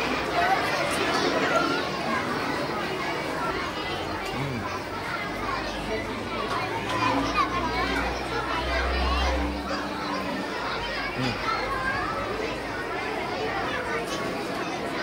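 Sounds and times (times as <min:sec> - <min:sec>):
children chattering: 0:00.0 - 0:15.0.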